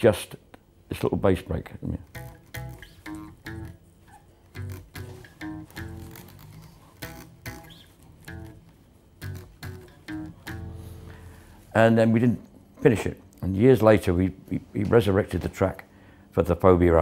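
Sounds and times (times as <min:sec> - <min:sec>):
electric bass riff: 0:02.0 - 0:11.8.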